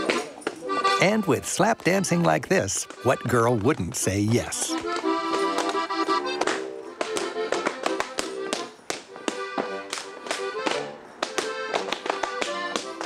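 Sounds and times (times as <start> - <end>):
accordion folk music: 0.0 - 13.0.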